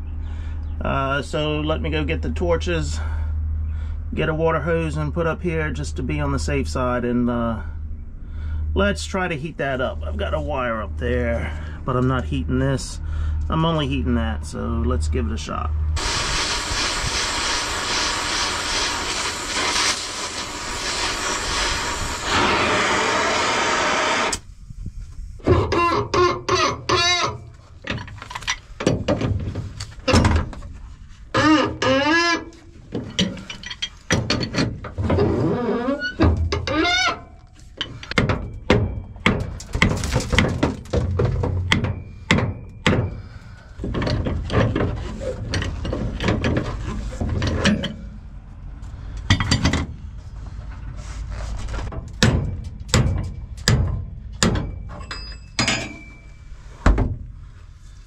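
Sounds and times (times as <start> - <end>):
gas torch hissing: 16.0 - 24.5
metal clanks of wrench: 33.0 - 35.0, 47.4 - 48.1, 52.2 - 56.3.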